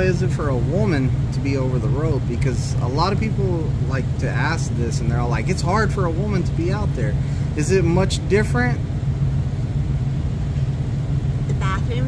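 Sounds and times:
steady low hum with rumble: 0.0s - 12.0s.

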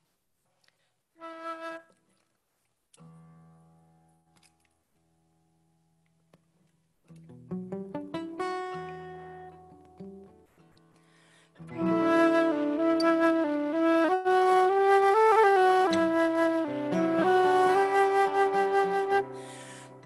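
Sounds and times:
flute: 1.2s - 2.0s, 11.7s - 20.0s
acoustic guitar: 3.0s - 20.0s.

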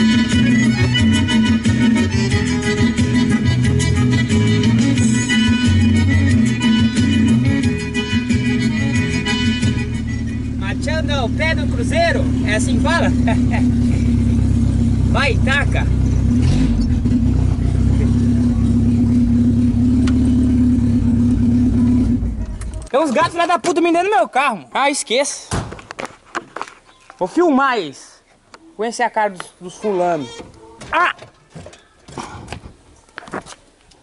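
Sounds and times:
background music: 0.0s - 10.6s
car engine drone from inside: 9.5s - 22.9s.

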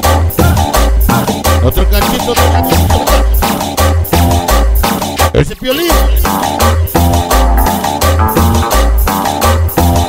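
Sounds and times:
cumbia dance music: 0.0s - 10.0s.

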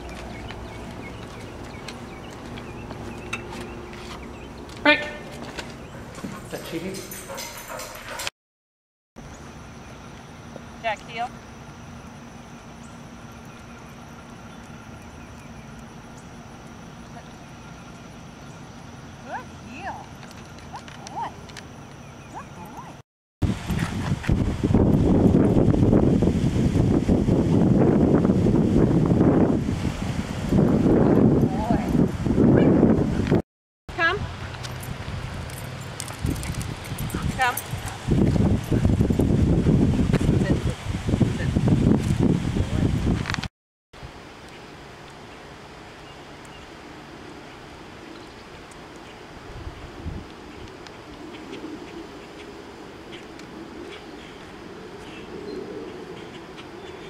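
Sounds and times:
footsteps on pavement: 0.0s - 8.2s, 34.4s - 39.2s
steady low hum: 9.2s - 22.9s.

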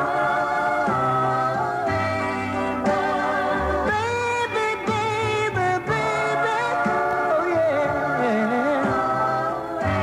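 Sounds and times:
backing band: 0.0s - 10.0s.

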